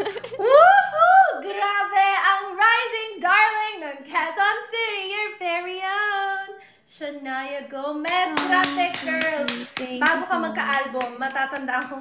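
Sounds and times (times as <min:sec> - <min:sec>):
hand clapping: 0:08.1 - 0:12.0
woman singing drawn-out notes: 0:10.1 - 0:10.7.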